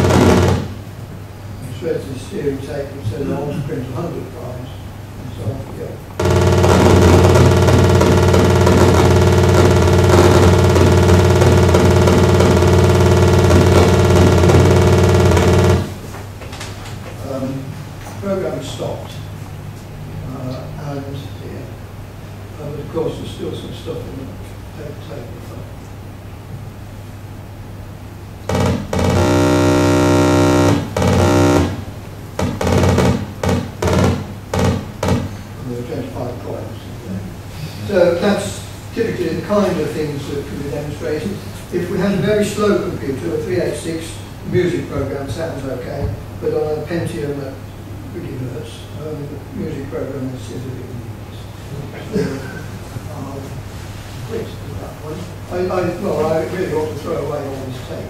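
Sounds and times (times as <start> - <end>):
short electronic notes: 0.0 - 0.9, 6.2 - 16.0, 28.5 - 34.8
buzzing tone from loudspeaker: 0.0 - 1.0, 6.2 - 16.1, 28.4 - 35.5
steady electronic note: 0.0 - 1.0, 6.2 - 16.1, 28.4 - 35.2.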